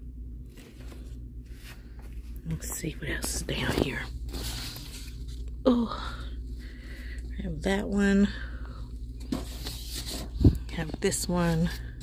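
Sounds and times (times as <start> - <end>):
low steady hum: 0.0 - 12.0
woman speaking: 2.4 - 4.2, 5.7 - 6.3, 7.3 - 8.6, 10.5 - 12.0
canvases scraping and rustling: 3.3 - 5.5, 9.2 - 12.0.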